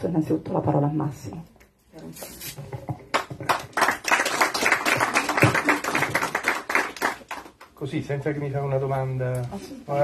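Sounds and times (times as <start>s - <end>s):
audience clapping: 3.1s - 7.8s.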